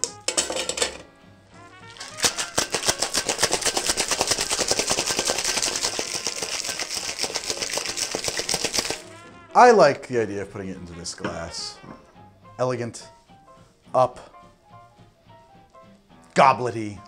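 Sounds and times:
ice rattling in cocktail shaker: 1.8 - 9.2.

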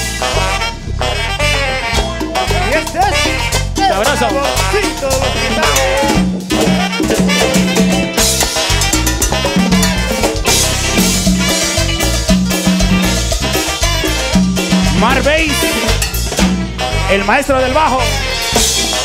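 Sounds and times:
cumbia band playing dance beat: 0.0 - 19.0.

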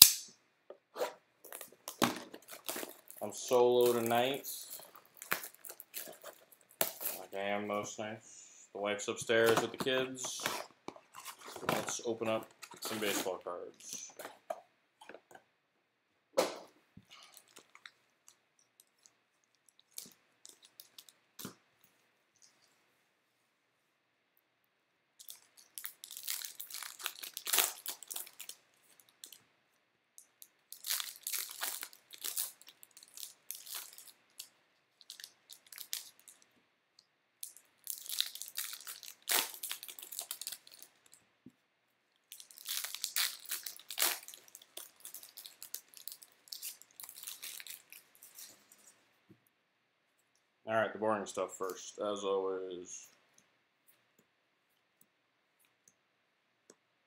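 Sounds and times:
card pack wrappers tearing and crinkling: 1.4 - 7.6, 9.3 - 14.5, 25.2 - 29.4, 30.5 - 36.4, 37.4 - 41.2, 42.3 - 48.6.

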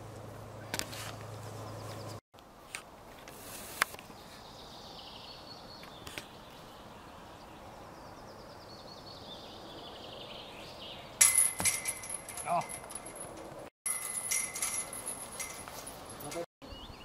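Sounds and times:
songbirds singing: 1.4 - 2.2, 4.0 - 11.3, 16.1 - 17.0.

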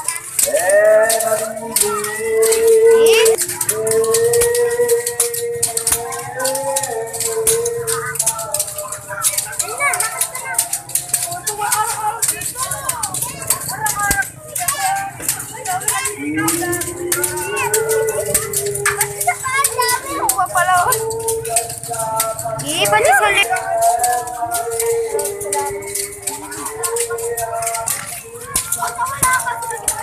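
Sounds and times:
crowd voices: 0.0 - 30.0.

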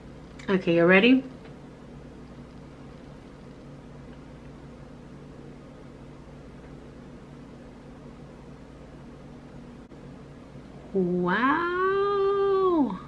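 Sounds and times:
fan hum and hiss: 0.0 - 13.0.

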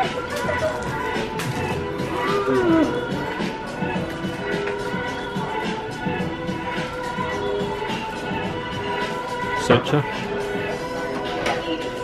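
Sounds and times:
shop background music: 0.0 - 12.0.

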